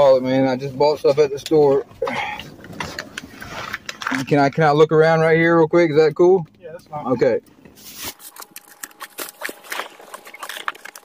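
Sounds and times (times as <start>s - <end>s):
rummaging clicks and rustles: 7.5s - 11.0s.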